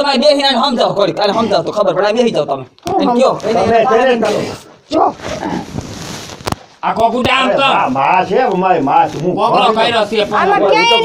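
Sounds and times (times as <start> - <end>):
person speaking: 0.0 - 5.7, 6.8 - 11.0.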